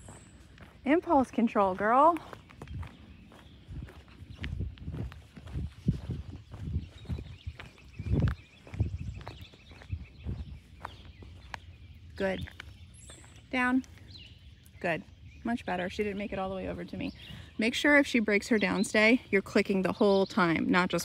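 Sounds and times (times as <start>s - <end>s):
footsteps on rough asphalt: 0.0s - 14.7s.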